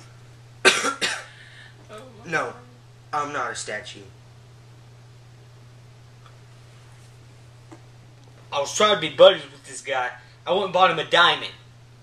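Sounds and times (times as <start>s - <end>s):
faint low hum: 0.0s - 12.0s
person coughing: 0.6s - 1.4s.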